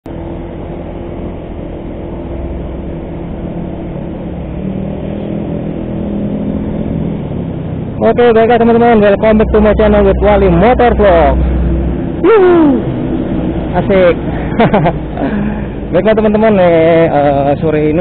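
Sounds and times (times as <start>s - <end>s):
motor scooter engine hum: 0.0s - 18.0s
road and wind noise: 0.0s - 18.0s.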